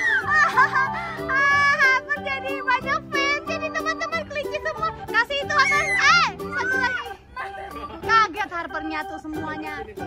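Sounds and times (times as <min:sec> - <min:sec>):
girl squealing: 0:00.0 - 0:00.4, 0:05.5 - 0:07.2
background music: 0:00.0 - 0:10.0.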